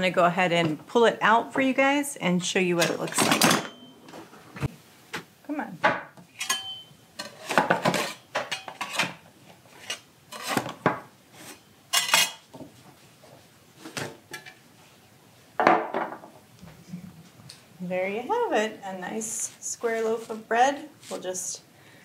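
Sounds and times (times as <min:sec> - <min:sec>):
metal pan clanking and knocking: 0:06.4 - 0:09.2
knife scraping metal loaf pan: 0:09.7 - 0:10.8.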